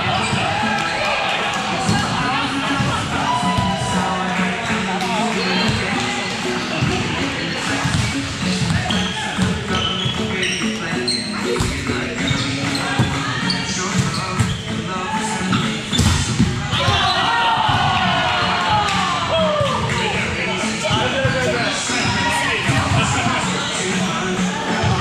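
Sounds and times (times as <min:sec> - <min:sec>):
background music: 0:00.0 - 0:25.0
players' voices: 0:00.0 - 0:25.0.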